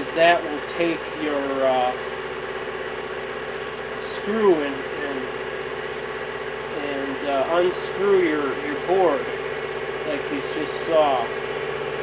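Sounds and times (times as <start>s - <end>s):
lathe motor whining: 0.0s - 12.0s.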